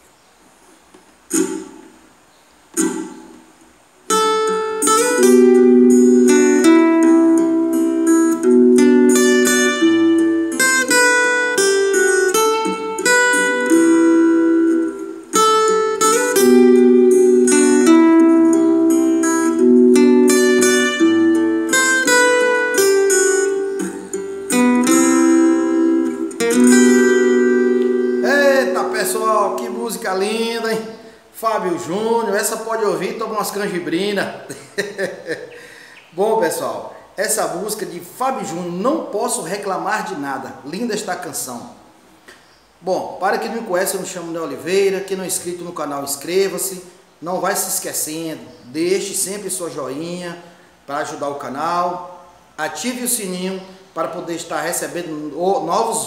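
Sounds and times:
fingerstyle acoustic guitar: 0.9 - 2.1, 2.7 - 31.0.

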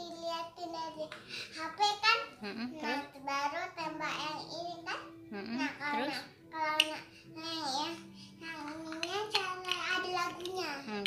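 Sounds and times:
small child talking: 0.0 - 11.0.

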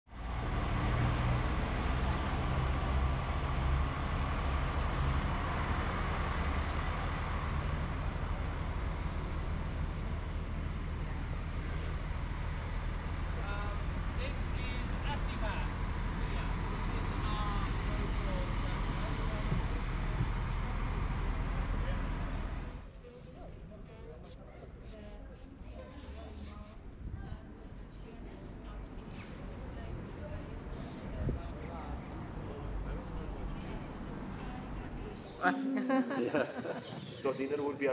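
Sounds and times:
street traffic: 0.1 - 37.9
coach engine idling: 2.0 - 22.8
people's voices: 23.0 - 37.9.

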